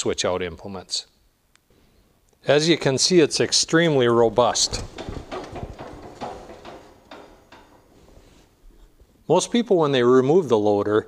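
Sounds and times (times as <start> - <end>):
metal loader arm knocking: 4.0 - 8.2.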